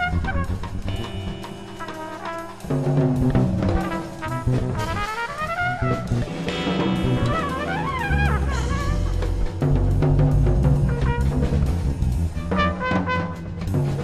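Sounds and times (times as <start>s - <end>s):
bass guitar: 0.0s - 1.4s, 2.7s - 14.0s
drum kit with cymbals: 0.0s - 14.0s
trumpet: 0.0s - 14.0s
electric guitar: 6.0s - 11.0s.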